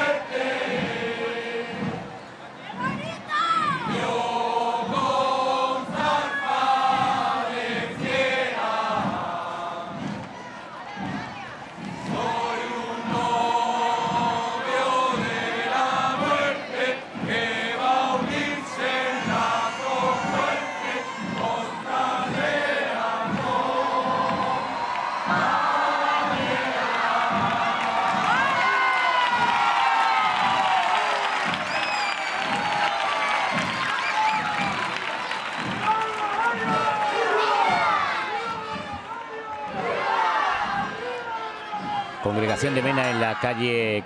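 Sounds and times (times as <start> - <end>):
men singing in unison: 0.0 - 2.2, 3.9 - 10.2, 12.0 - 28.5
large street crowd: 0.0 - 44.0.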